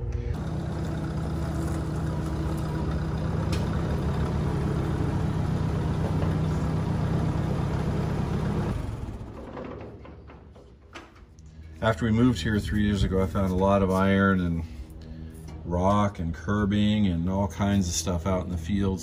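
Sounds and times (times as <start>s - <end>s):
tractor engine running: 0.0s - 19.0s.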